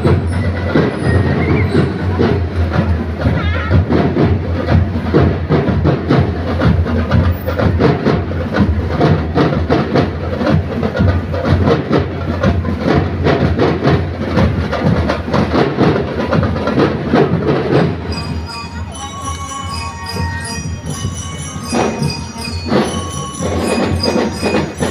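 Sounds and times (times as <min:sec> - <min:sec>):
marching drums beating: 0:00.0 - 0:24.9.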